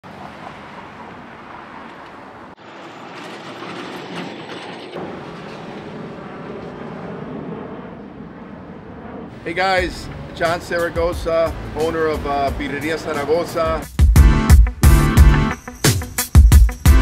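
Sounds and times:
traffic rumble: 0.0 - 13.9
vehicles passing: 0.0 - 14.6.

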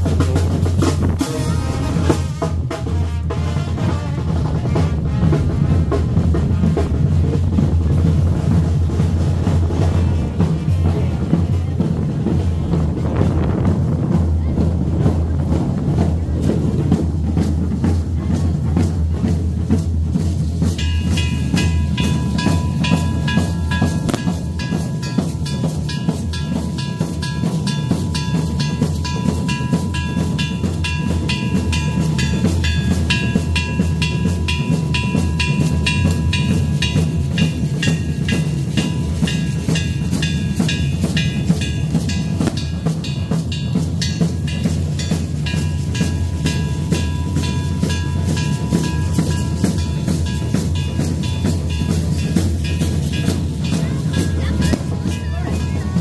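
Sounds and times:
wind instruments holding notes: 0.0 - 7.1
fast drumbeat: 0.0 - 56.0.

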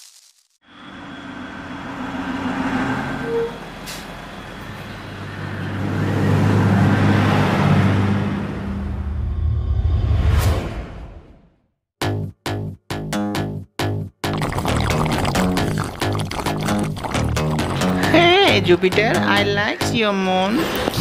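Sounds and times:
bus engine: 0.7 - 9.4
bus air brake hiss: 3.8 - 4.2.

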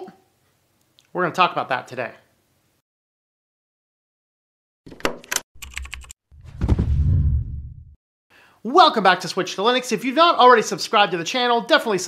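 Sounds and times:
sharp typing-like clicks: 5.2 - 6.2.

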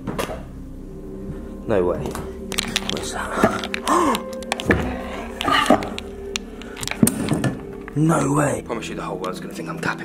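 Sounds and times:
faint steady drone: 0.0 - 10.0
debris crunching underfoot: 2.5 - 8.4
breathy vocal exclamation: 3.0 - 5.7.

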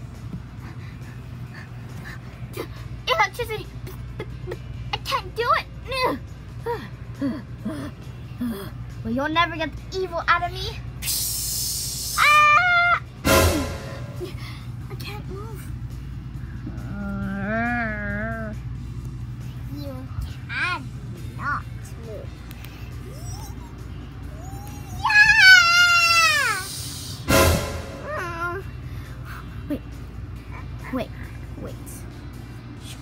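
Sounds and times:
child's high-pitched cry: 12.1 - 13.1, 23.0 - 27.0.

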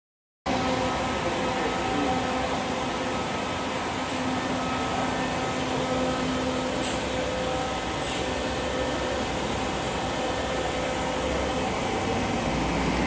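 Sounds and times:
coach diesel engine idling: 0.5 - 13.0.

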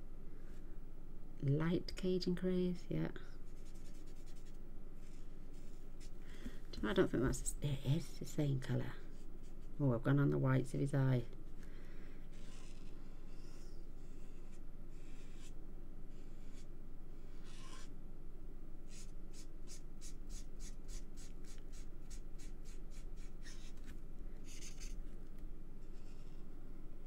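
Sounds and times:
marker tip rubbing on cardstock: 12.3 - 16.7, 17.3 - 17.9, 18.9 - 25.0.

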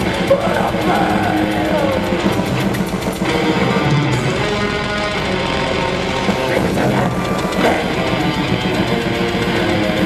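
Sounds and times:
drums: 0.0 - 10.0
electric guitars: 0.0 - 10.0
metal band playing live: 0.0 - 10.0.

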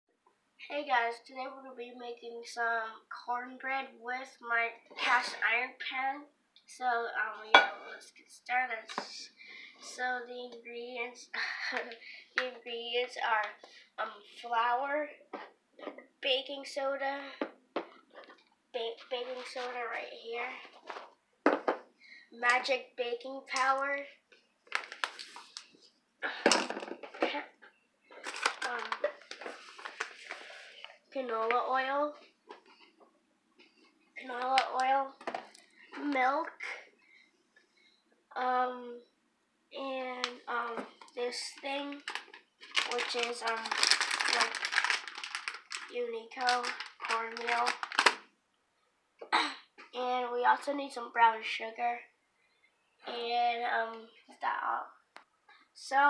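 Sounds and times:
boy speaking: 0.6 - 15.2, 15.8 - 17.5, 18.8 - 20.8, 22.3 - 24.2, 28.6 - 29.2, 31.2 - 32.2, 34.2 - 36.8, 38.3 - 39.0, 39.8 - 42.1, 42.8 - 44.8, 45.8 - 47.8, 49.4 - 52.1, 53.0 - 55.0, 55.8 - 56.0
rustles and knocks of containers: 26.4 - 31.0, 32.2 - 36.2, 42.0 - 48.2
boy coughing: 49.3 - 49.7.

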